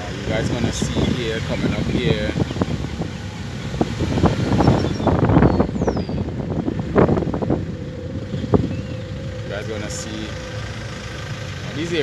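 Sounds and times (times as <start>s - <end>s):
wind buffeting microphone: 0.0s - 11.0s
van engine hum: 0.0s - 12.0s.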